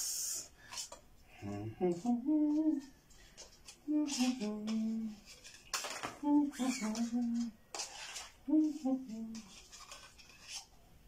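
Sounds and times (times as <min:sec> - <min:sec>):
man humming a tune: 0:01.4 - 0:02.9, 0:03.8 - 0:05.2, 0:06.2 - 0:07.6, 0:08.4 - 0:09.5.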